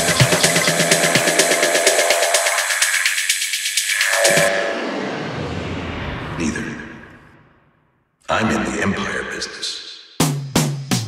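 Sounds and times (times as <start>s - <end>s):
processed voice sample: 6.4s - 7.1s, 8.2s - 9.9s.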